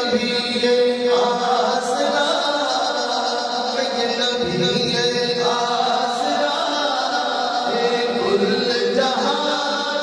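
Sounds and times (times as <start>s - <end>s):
man singing devotional poem: 0.0s - 10.0s.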